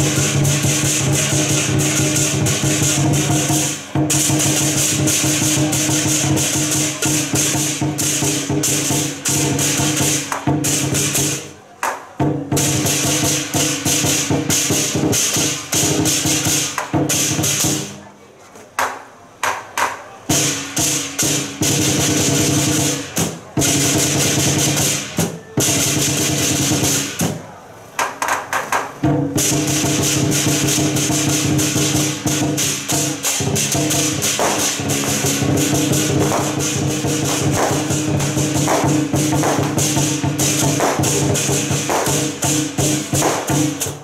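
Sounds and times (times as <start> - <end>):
crashing cymbals: 0.0 - 11.5, 12.2 - 18.0, 20.3 - 27.3, 29.0 - 44.0
large drum beaten rapidly: 0.0 - 11.5, 12.2 - 18.0, 20.3 - 27.4, 28.2 - 44.0.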